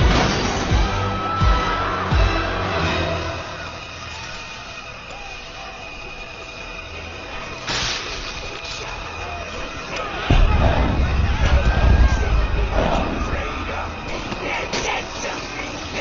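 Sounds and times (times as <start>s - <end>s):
film score music: 0.0s - 16.0s
street and crowd sounds: 0.0s - 16.0s
low rumbling effect: 10.3s - 15.0s.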